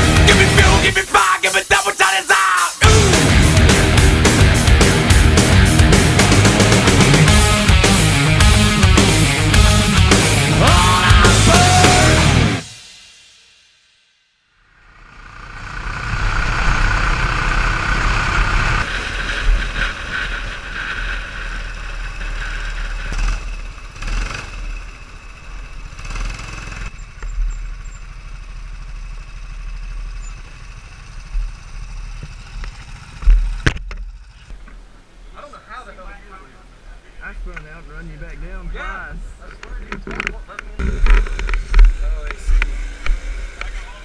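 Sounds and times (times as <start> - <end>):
go-kart engine running: 0.0 - 0.8, 14.8 - 34.6, 40.8 - 44.0.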